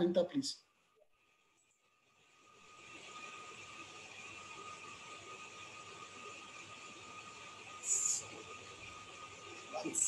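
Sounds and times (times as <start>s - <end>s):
microphone background hiss: 2.5s - 10.0s
faint high steady tone: 7.8s - 8.4s.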